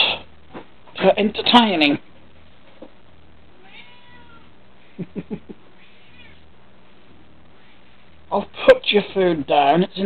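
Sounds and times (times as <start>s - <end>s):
cat meowing: 3.6s - 4.6s, 5.8s - 6.5s.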